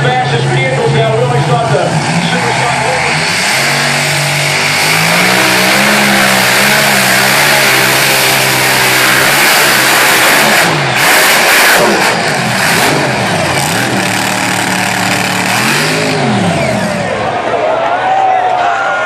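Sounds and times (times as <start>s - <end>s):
tractor engine roaring: 0.0s - 18.0s.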